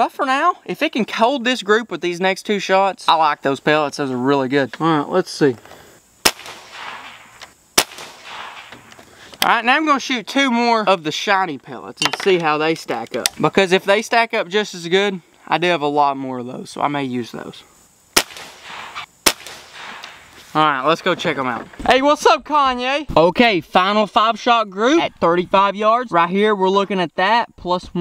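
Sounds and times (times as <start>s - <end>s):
air rifle shots: 6.2s - 8.9s, 18.1s - 20.3s.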